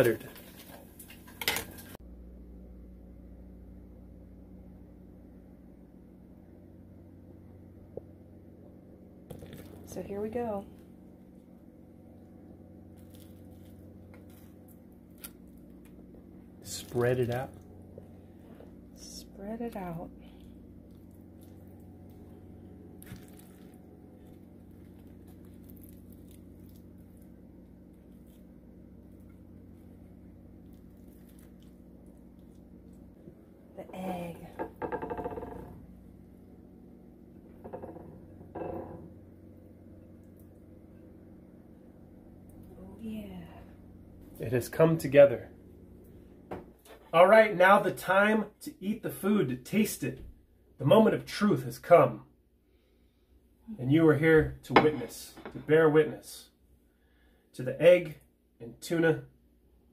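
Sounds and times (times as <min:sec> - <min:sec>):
low kitchen hum: 0:00.0 - 0:59.9.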